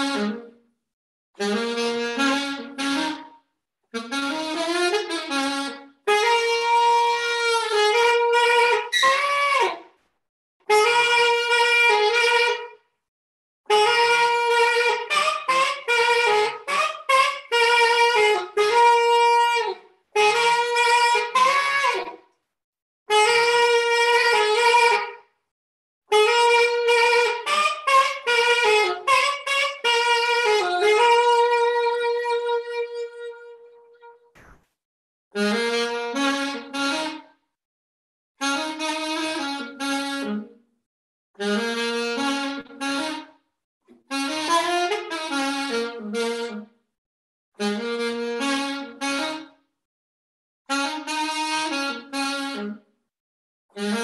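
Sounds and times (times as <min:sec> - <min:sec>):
alto saxophone melody: 0:00.0 - 0:00.8, 0:01.4 - 0:10.0, 0:10.6 - 0:12.9, 0:13.7 - 0:22.4, 0:23.1 - 0:25.4, 0:26.1 - 0:34.6, 0:35.4 - 0:37.6, 0:38.4 - 0:40.8, 0:41.4 - 0:47.0, 0:47.6 - 0:49.9, 0:50.7 - 0:53.0, 0:53.8 - 0:54.0.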